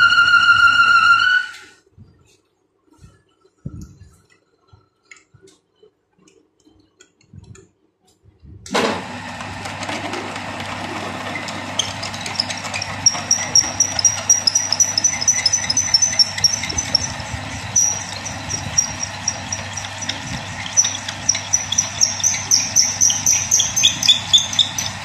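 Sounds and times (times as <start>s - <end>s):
lathe motor humming: 8.9s - 25.0s
drill cutting squeal: 11.2s - 25.0s.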